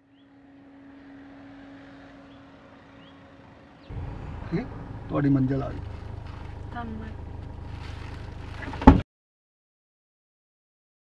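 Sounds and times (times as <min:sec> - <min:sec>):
car engine humming: 0:00.0 - 0:09.0
tyre and road noise: 0:00.3 - 0:09.0.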